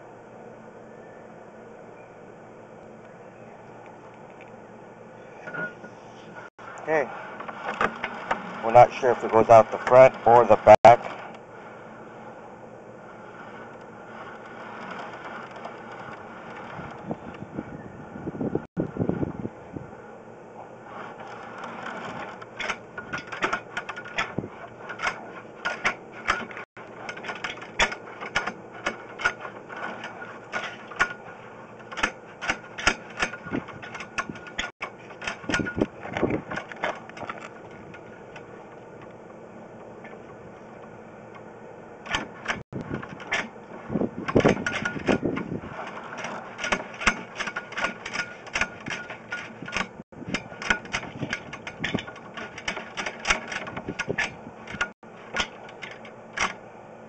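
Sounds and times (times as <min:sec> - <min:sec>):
scraping rattle: 0:06.6 - 0:12.2, 0:13.0 - 0:17.4, 0:20.8 - 0:39.1, 0:42.0 - 0:56.6.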